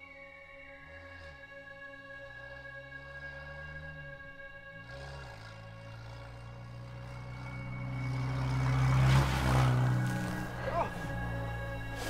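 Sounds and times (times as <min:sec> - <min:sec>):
car passing by: 0:00.9 - 0:12.0.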